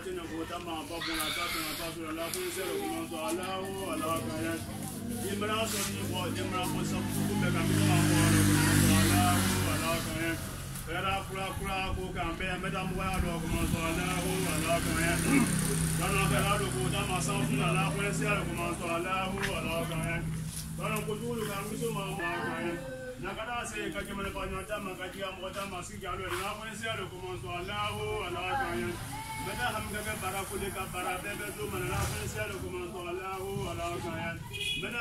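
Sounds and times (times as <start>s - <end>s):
people talking: 0.0s - 20.2s, 20.8s - 35.0s
voices singing melody: 0.0s - 23.8s.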